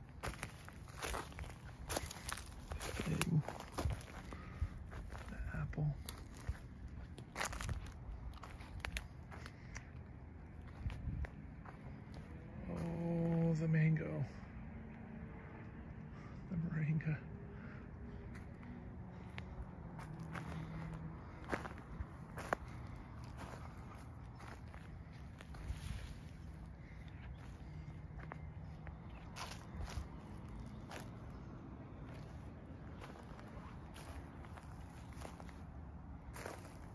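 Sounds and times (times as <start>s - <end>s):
footsteps through dry grass: 0.0s - 13.6s, 18.2s - 36.9s
low steady rumble: 0.0s - 36.9s
twigs crackling and snapping: 0.2s - 4.4s, 6.0s - 10.8s.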